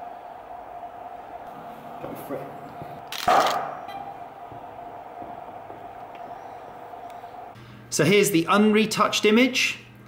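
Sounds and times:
steady hum: 0.0s - 10.0s
camera shutter and flash burst: 3.1s - 3.8s.

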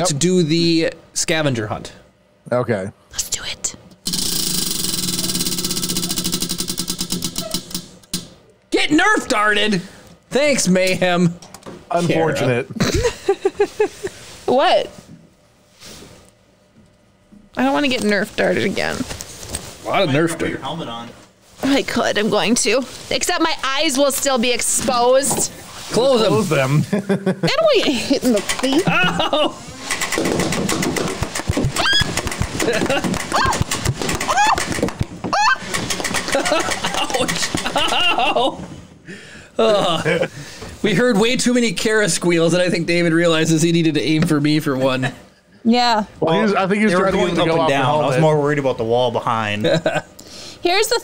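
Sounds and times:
steady low hum: 0.0s - 51.0s
toy blaster motor whirring: 4.0s - 7.9s
woman squealing: 31.7s - 32.2s, 33.3s - 35.7s.

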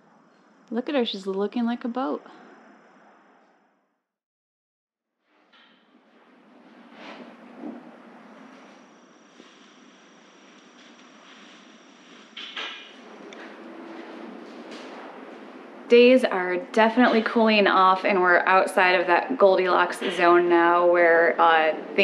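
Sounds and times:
faint high whine: 0.0s - 4.0s, 5.6s - 22.0s.

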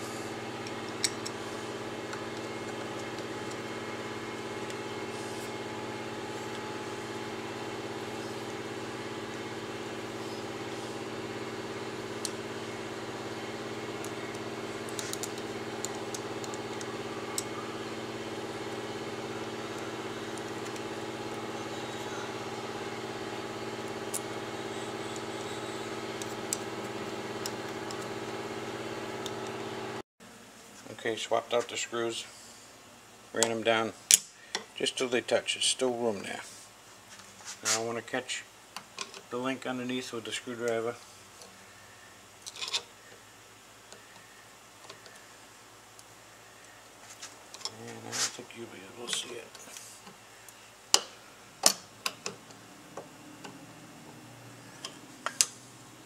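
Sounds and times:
steady machine hum: 0.0s - 36.8s, 43.0s - 56.0s.

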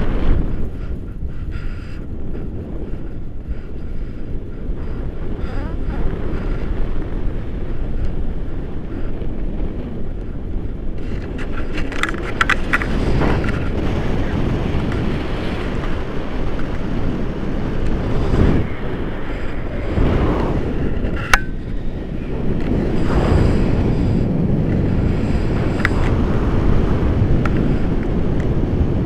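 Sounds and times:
wind rushing over microphone: 0.0s - 29.0s.

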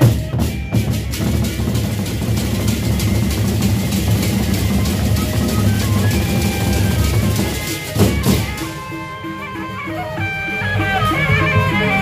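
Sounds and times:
barrel drums beaten with sticks: 0.0s - 8.8s.

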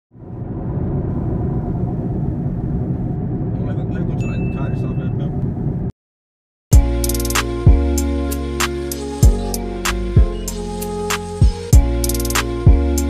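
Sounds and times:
car road rumble inside cabin: 0.2s - 5.9s.

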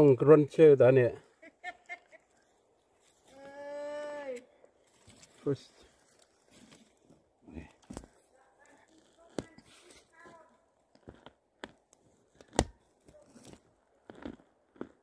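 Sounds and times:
twigs snapping and crackling: 7.7s - 9.6s, 11.0s - 14.3s.

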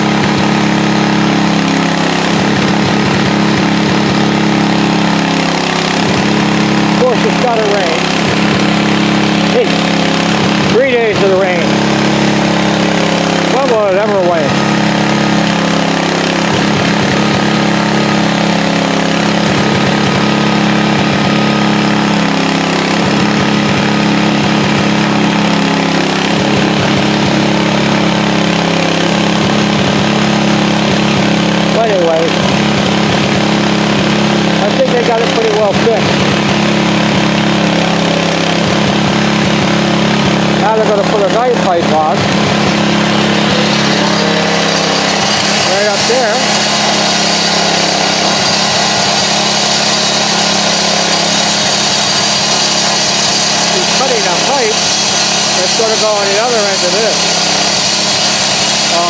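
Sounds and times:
large engine running: 0.0s - 59.0s
voices: 43.4s - 46.6s.

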